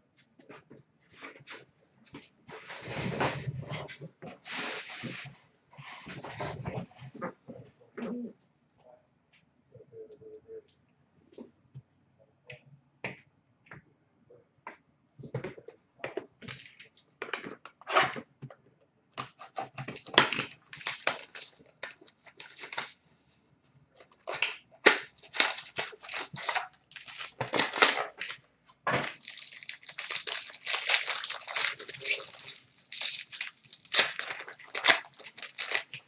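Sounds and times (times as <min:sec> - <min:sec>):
card wrappers tearing and crinkling: 0:19.3 - 0:23.0, 0:24.2 - 0:36.0.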